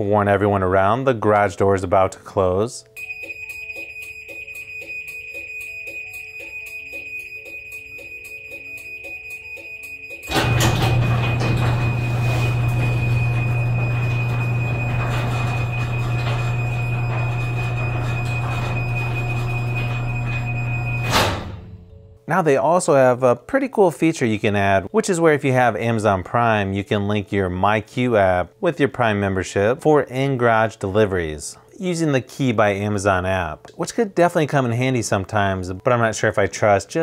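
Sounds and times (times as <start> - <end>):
garage door motor humming: 10.2 - 21.9.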